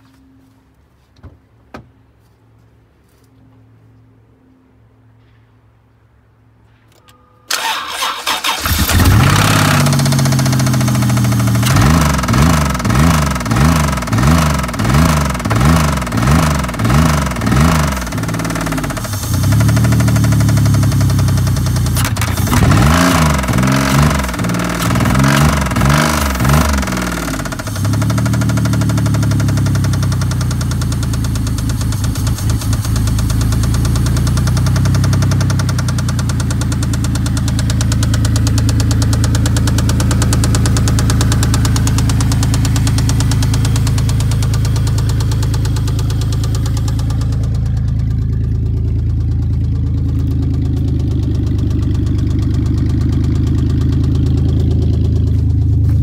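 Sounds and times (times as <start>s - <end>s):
car engine starting and knocking: 7.5s - 56.0s.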